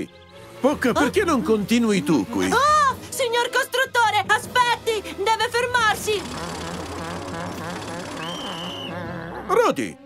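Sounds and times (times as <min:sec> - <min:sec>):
construction machinery engine droning: 0:05.4 - 0:09.1
high whistle-like tone: 0:08.2 - 0:09.0.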